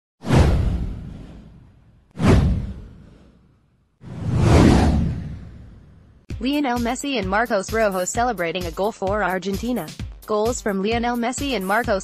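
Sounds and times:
whoosh: 0:00.2 - 0:06.3
deep rumble: 0:04.0 - 0:06.3.

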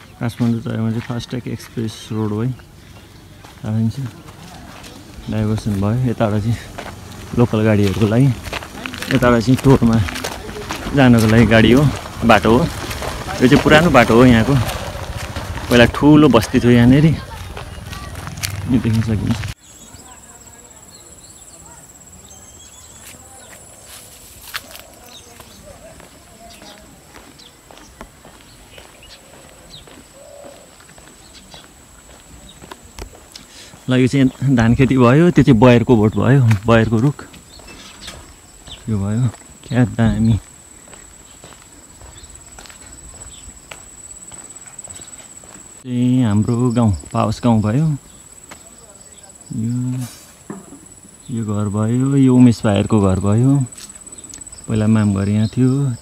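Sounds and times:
man talking: 0:00.1 - 0:02.7, 0:03.5 - 0:14.9, 0:15.6 - 0:17.4, 0:18.5 - 0:19.6, 0:33.8 - 0:37.3, 0:38.8 - 0:40.5, 0:45.8 - 0:48.1, 0:48.7 - 0:50.3, 0:51.2 - 0:53.8, 0:54.6 - 0:56.0
dove cooing: 0:11.5 - 0:15.8, 0:28.8 - 0:31.7.

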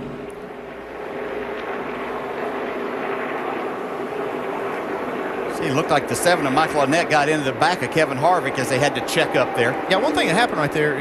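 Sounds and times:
race cars engines droning: 0:00.0 - 0:11.0.

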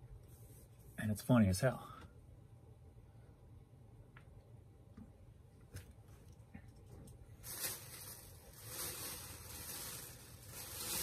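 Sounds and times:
fabric rustling: 0:07.3 - 0:11.0.

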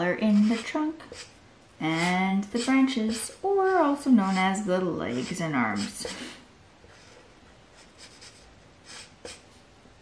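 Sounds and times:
marker scratching on paper: 0:04.2 - 0:06.2, 0:07.8 - 0:09.5.

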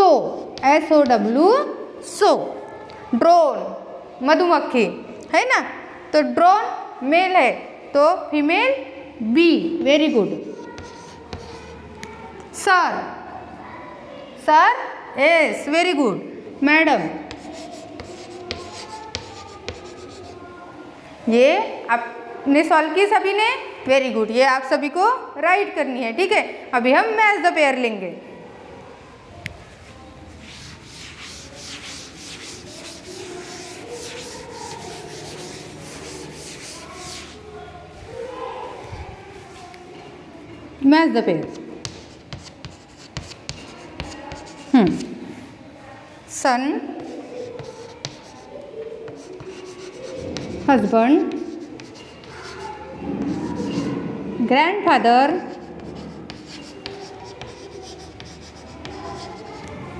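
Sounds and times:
duster rubbing on chalkboard: 0:10.3 - 0:11.8, 0:17.3 - 0:20.4, 0:30.3 - 0:37.5, 0:41.8 - 0:45.1, 0:47.0 - 0:54.0, 0:55.4 - 0:59.7.

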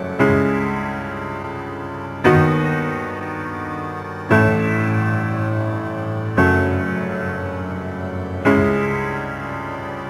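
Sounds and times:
piano playing slow chords: 0:00.0 - 0:10.0.

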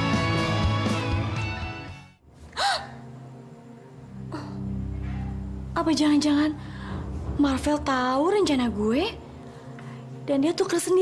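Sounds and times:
woman gasping: 0:02.5 - 0:03.0.

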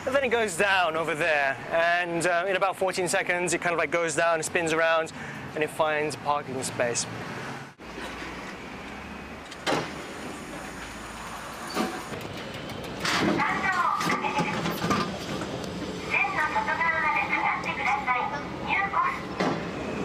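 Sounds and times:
city traffic hum: 0:00.0 - 0:20.0
people's voices: 0:13.1 - 0:15.2, 0:16.0 - 0:19.3.

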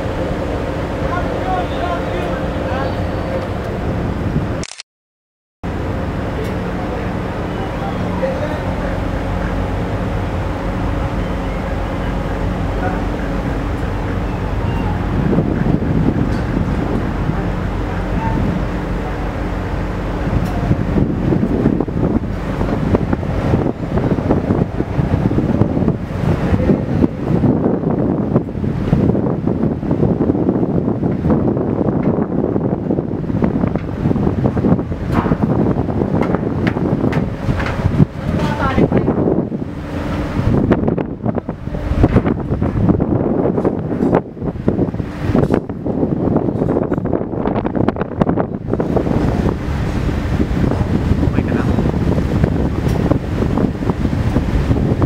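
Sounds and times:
wind buffeting microphone: 0:00.0 - 0:04.6, 0:05.6 - 0:55.0
ship engine running low: 0:00.0 - 0:04.8, 0:05.6 - 0:55.0.

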